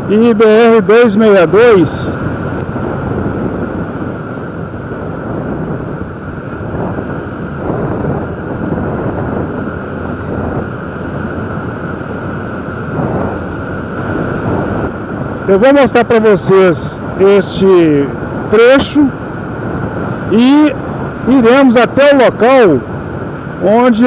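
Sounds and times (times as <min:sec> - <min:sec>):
motorcycle engine running: 0:00.0 - 0:21.7
wind and road noise: 0:00.0 - 0:24.0.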